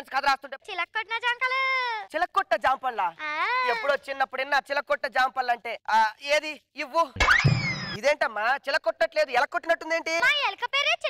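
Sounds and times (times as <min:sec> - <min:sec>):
cartoon boing effect: 0:07.2 - 0:08.0.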